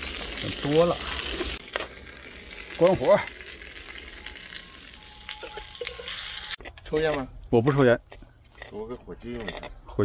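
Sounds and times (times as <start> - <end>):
food sizzling in a wok: 0.0 - 6.6.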